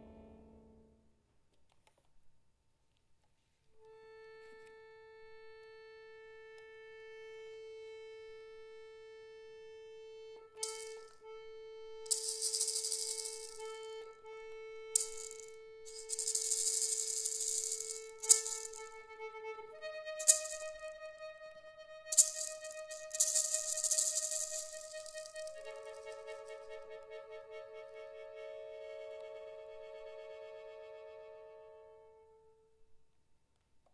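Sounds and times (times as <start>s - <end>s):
accordion sustained note: 5.0s - 32.4s
hand-held rattle shaken: 10.6s - 11.2s, 12.1s - 13.8s, 15.0s - 19.0s, 20.2s - 20.8s, 22.1s - 26.5s.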